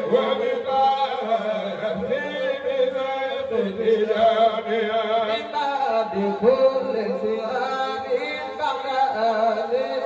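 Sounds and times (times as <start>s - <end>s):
men chanting: 0.0s - 10.0s.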